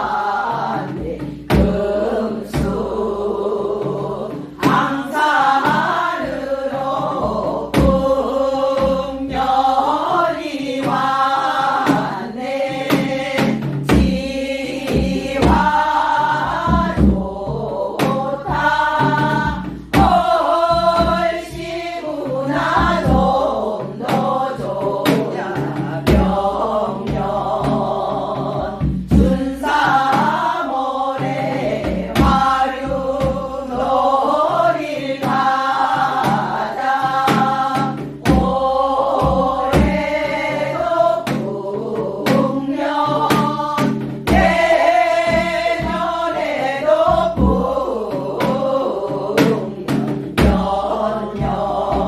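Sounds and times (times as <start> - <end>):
woman singing folk song: 0.0 - 52.0
hand drum knocks: 42.2 - 46.4, 49.4 - 52.0.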